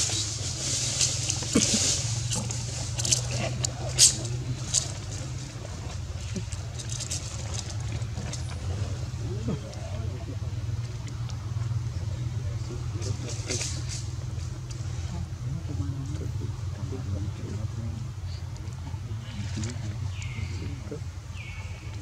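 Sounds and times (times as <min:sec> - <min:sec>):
faint distant voices: 0:00.0 - 0:22.0
steady low hum: 0:00.0 - 0:22.0.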